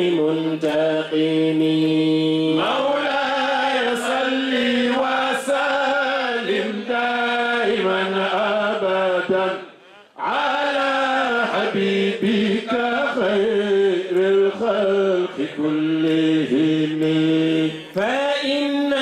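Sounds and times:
man chanting through a microphone: 0.0 - 19.0.

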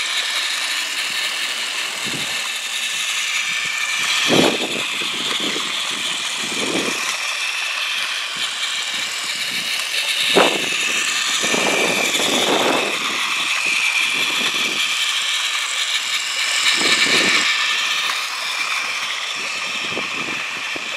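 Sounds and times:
toy train motor whirring: 0.0 - 20.9.

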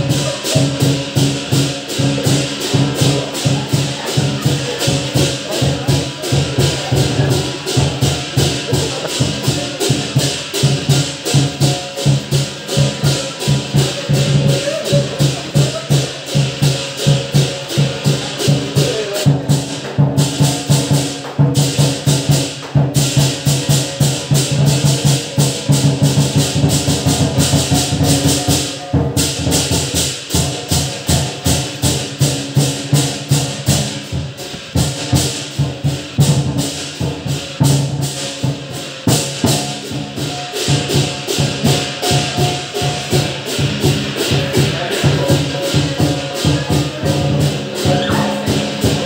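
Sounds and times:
cymbals clashing: 0.0 - 49.0
drum beating fast rhythm: 0.0 - 49.0.

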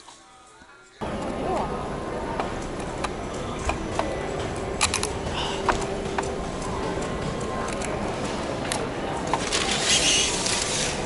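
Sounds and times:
room noise: 0.0 - 11.0
background chatter: 0.2 - 11.0.

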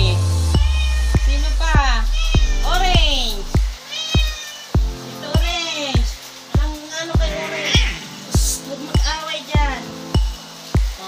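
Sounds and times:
music with thumping beat: 0.0 - 11.0
cats meowing: 0.5 - 8.3.

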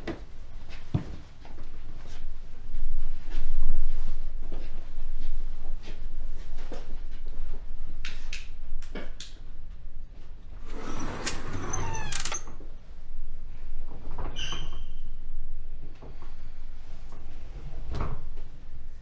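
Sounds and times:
elevator mechanical whir: 9.6 - 19.0
elevator doors sliding open: 10.6 - 12.8.

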